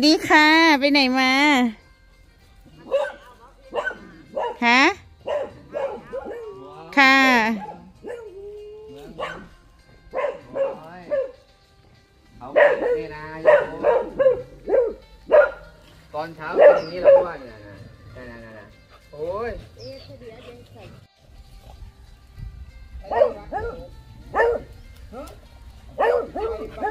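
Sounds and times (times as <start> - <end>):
dogs barking and yipping: 2.7 - 21.9, 22.9 - 26.9.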